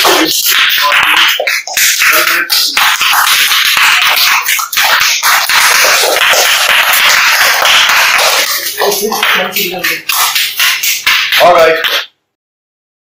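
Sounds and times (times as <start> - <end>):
person speaking: 0.0 - 4.8, 5.6 - 12.1
audience clapping: 0.0 - 12.1.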